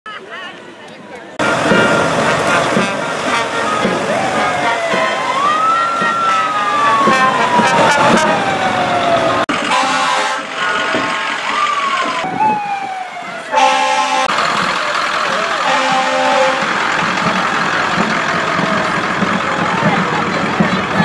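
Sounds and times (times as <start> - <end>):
brass band playing: 1.4 - 11.9, 13.5 - 14.4, 15.4 - 17.4
fire engine siren wailing: 1.4 - 21.0.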